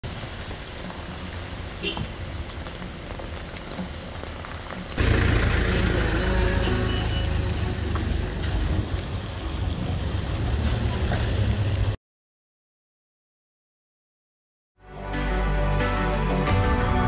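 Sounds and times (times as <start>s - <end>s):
rain-like hiss: 0.0s - 12.0s
tyres on wet road: 0.0s - 12.0s
vehicle engines in slow traffic: 0.0s - 12.0s
heavy low rumble: 5.0s - 12.0s.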